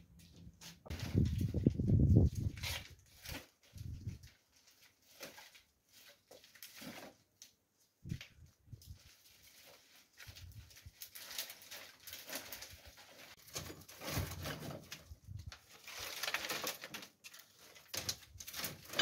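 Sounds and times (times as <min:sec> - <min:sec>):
dry twigs rustling and crackling: 0:00.3 - 0:19.0
thin branches snapping and scraping: 0:00.9 - 0:19.0.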